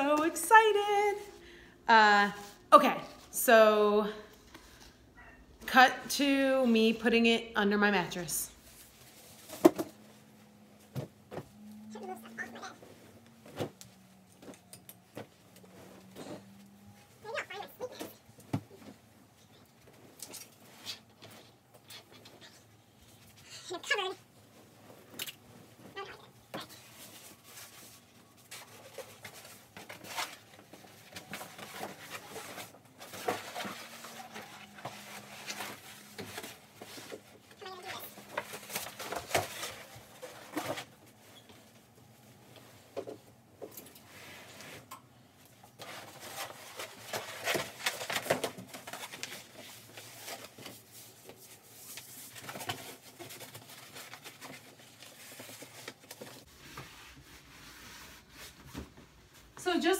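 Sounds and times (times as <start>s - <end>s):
fabric and bedding rustling: 8.2s - 59.9s.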